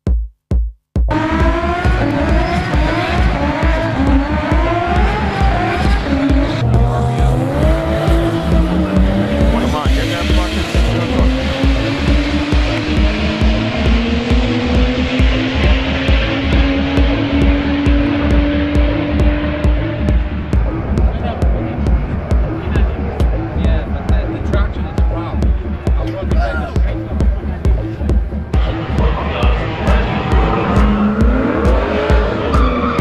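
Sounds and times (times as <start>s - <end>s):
dance music with kick drum: 0.0s - 33.0s
car engine revving: 1.1s - 33.0s.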